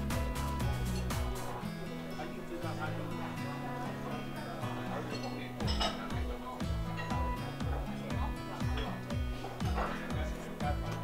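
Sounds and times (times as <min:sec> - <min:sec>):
background music with kick drum: 0:00.0 - 0:11.0
chopsticks clinking on plate: 0:05.1 - 0:06.1.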